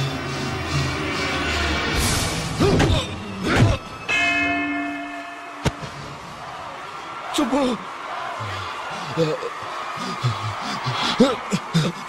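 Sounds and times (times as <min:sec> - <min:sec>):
man laughing or breathing heavily: 0:08.9 - 0:12.0.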